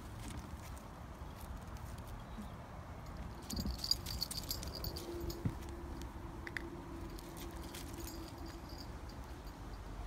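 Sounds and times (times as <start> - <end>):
light jingle: 3.0 - 5.7, 7.0 - 10.0.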